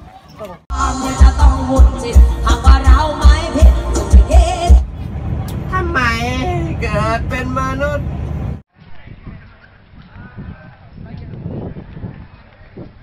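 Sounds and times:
traffic rumble: 3.0s - 13.0s.

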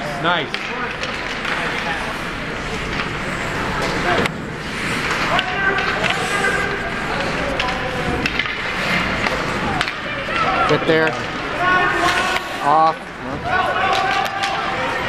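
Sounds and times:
hockey sticks and puck clacking: 0.0s - 15.0s
skates scraping on ice: 0.5s - 15.0s.

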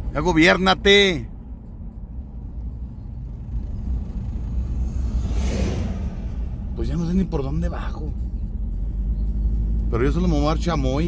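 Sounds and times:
car road rumble from inside: 0.0s - 11.0s
passing vehicle whoosh: 2.7s - 10.0s.

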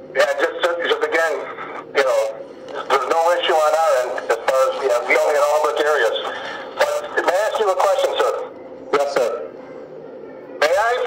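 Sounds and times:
man speaking over phone speaker: 0.1s - 9.6s, 10.6s - 11.0s.

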